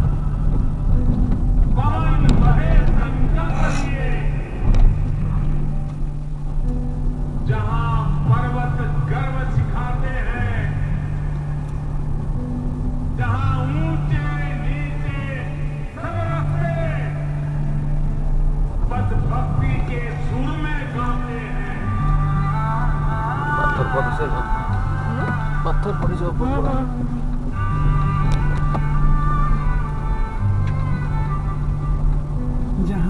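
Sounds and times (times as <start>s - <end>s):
car engine and road drone: 0.0s - 33.0s
song with singing voice: 0.0s - 33.0s
person talking: 3.4s - 4.0s, 23.6s - 27.3s, 32.8s - 33.0s.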